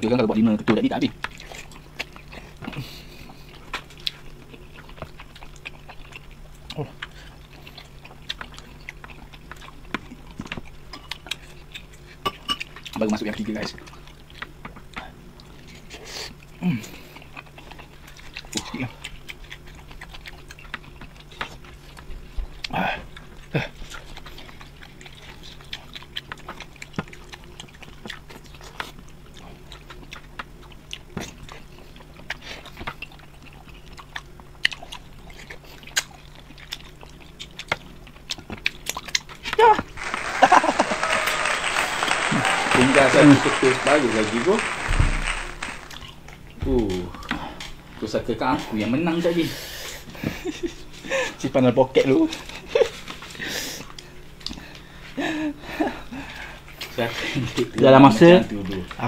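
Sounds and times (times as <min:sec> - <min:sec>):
people chewing: 0:01.1 - 0:48.0, 0:52.3 - 0:57.7.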